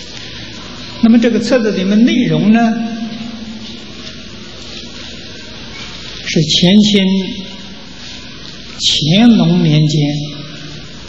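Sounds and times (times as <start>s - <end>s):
faint low hum: 0.0s - 11.0s
recording hiss: 0.0s - 11.0s
man speaking: 1.0s - 3.5s, 6.3s - 7.6s, 8.8s - 10.5s.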